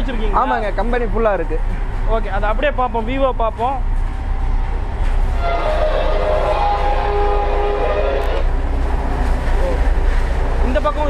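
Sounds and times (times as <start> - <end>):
low machine rumble: 2.9 - 10.6
held horn-like chord: 5.4 - 8.6.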